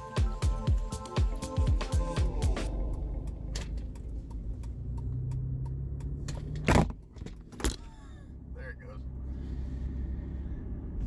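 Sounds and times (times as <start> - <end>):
low hum inside car: 2.2 - 11.0.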